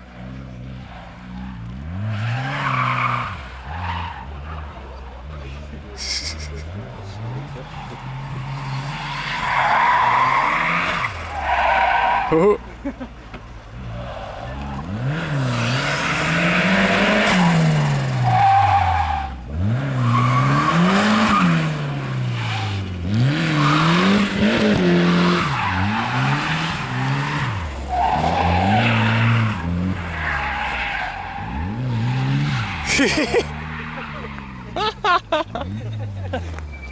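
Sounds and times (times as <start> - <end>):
car engine revving: 0.0 - 13.0, 13.6 - 36.9
tyres squealing and skidding: 0.2 - 36.9.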